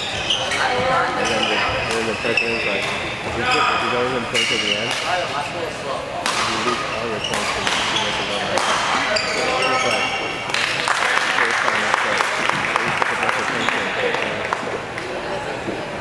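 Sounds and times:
shoes squeaking: 0.0s - 5.2s, 6.4s - 10.5s
spectators applauding: 10.5s - 14.7s.

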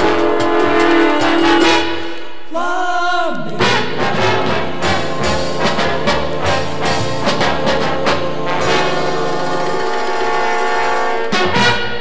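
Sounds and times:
trombone ensemble chord: 0.0s - 2.2s, 3.6s - 12.0s
steady drum beat: 0.0s - 2.8s, 3.4s - 12.0s.

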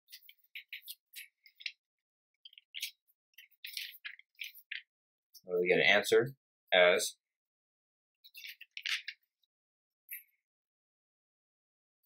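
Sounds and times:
faint high-pitched scratchy rustles: 2.5s - 4.8s.

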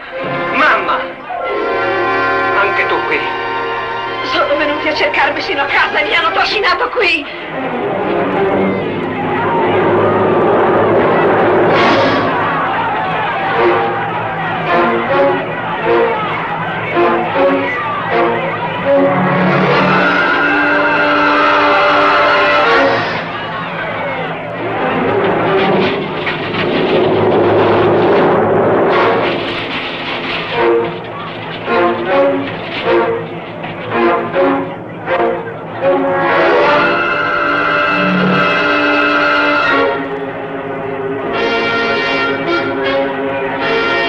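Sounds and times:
orchestral brass chords and stabs: 0.0s - 6.4s, 7.4s - 44.0s.

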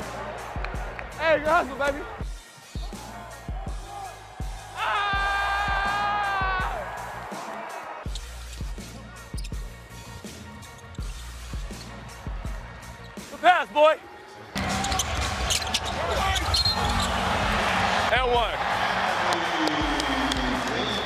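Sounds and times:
arena crowd noise: 0.0s - 2.3s, 2.9s - 8.1s, 12.0s - 21.0s
sneaker squeaks: 8.1s - 9.7s, 14.6s - 17.2s.

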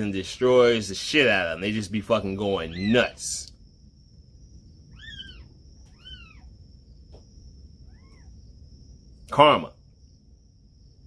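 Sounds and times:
faint high-pitched whine: 0.0s - 11.0s
cat meowing faintly: 4.9s - 6.5s, 7.8s - 8.4s.

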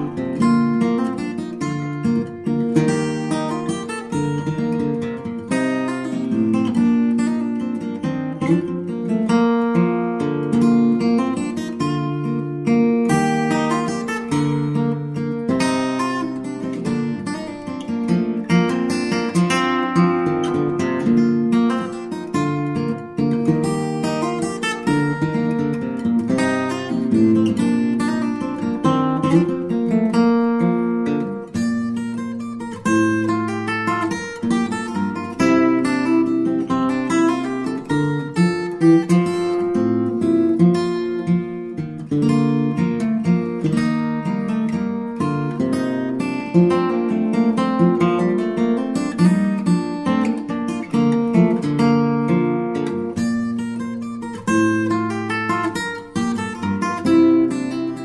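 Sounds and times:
acoustic guitar music: 0.0s - 58.0s.

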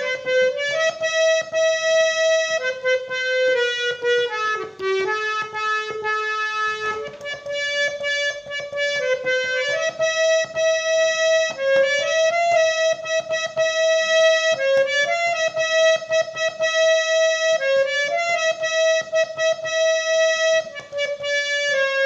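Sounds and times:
harmonium melody: 0.0s - 22.0s.

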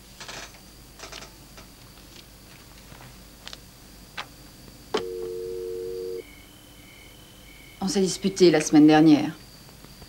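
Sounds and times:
two-tone dial tone: 5.0s - 6.4s.

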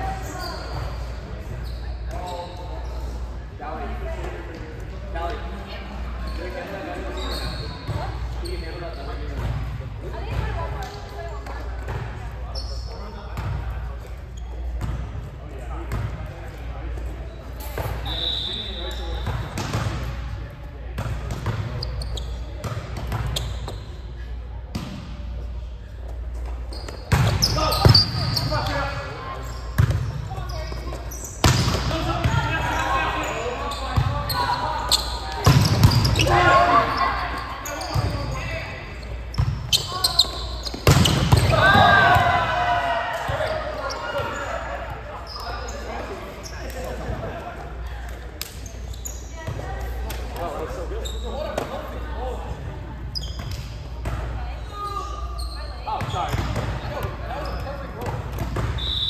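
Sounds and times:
background chatter: 0.0s - 59.0s
players calling and shouting: 26.2s - 59.0s.

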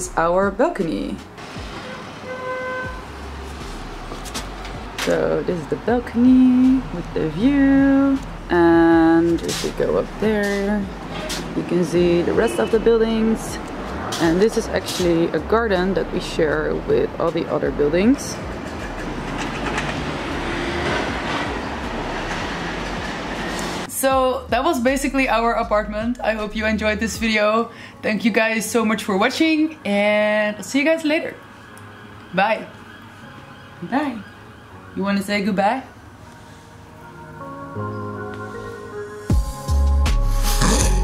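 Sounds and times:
distant traffic rumble: 0.0s - 36.3s.

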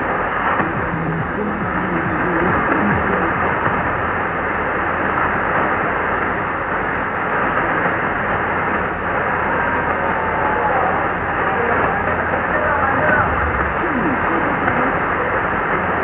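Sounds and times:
faint radio programme audio: 0.0s - 4.9s, 10.7s - 16.0s
radio static and hiss: 0.0s - 16.0s.

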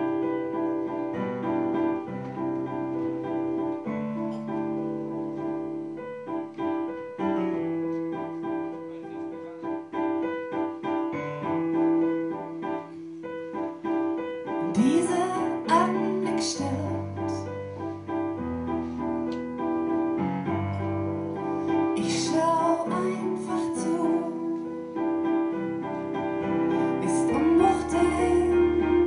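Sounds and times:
electric piano chords: 0.0s - 29.0s
woman singing: 14.6s - 17.5s, 22.0s - 24.7s, 26.9s - 29.0s.

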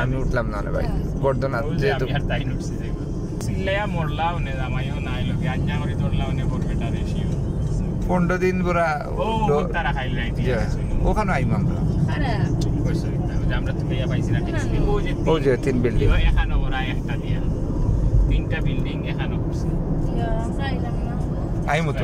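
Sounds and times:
people talking: 0.0s - 7.4s, 8.0s - 17.5s, 18.3s - 22.0s
car road and engine rumble: 0.0s - 22.0s.

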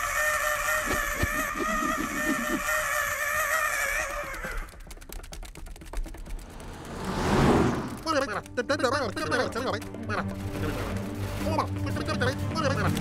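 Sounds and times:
cartoon penguin screaming: 0.0s - 4.7s
fast patter of sharp clicks: 0.0s - 13.0s.

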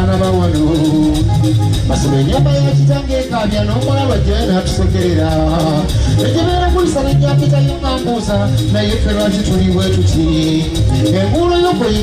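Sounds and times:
live band playing loud music: 0.0s - 12.0s.

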